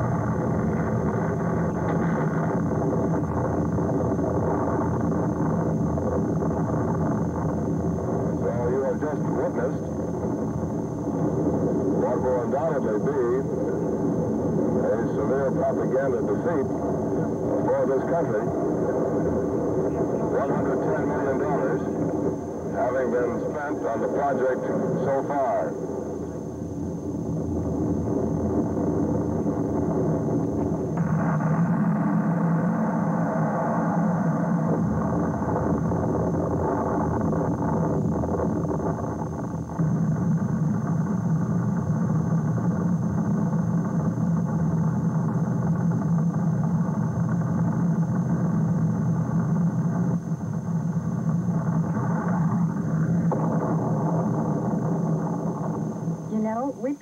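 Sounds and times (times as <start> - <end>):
rocket engine roar: 0.0 - 57.0
explosions: 27.2 - 47.8, 51.4 - 56.4.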